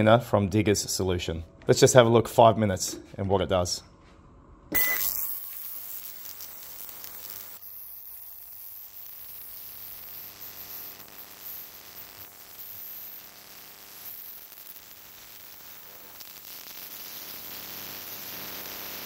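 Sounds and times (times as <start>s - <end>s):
short beep: 4.7s - 5.3s
ultrasonic cleaner hissing: 5.3s - 19.0s.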